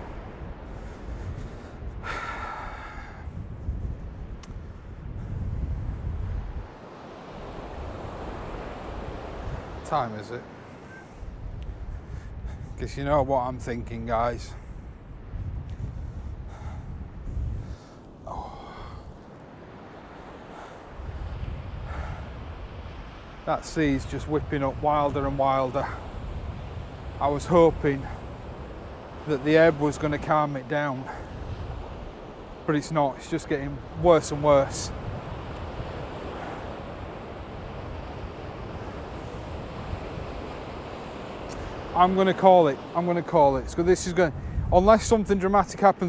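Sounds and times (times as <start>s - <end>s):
surf breaking on shore: 0.0s - 3.3s, 5.8s - 11.4s, 17.6s - 46.0s
wind buffeting microphone: 0.0s - 46.0s
man breathing heavily: 0.7s - 3.4s, 15.9s - 19.3s, 21.8s - 22.5s.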